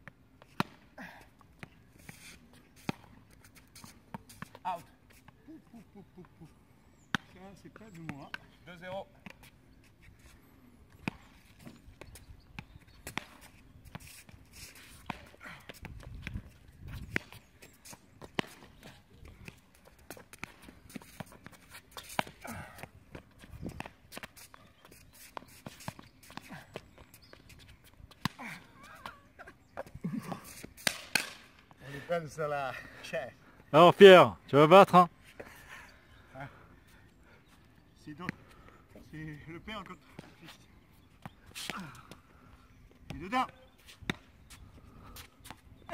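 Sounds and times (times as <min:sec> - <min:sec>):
footsteps on a court: 0:07.9 - 0:29.2
ball being struck and bouncing: 0:30.8 - 0:31.5.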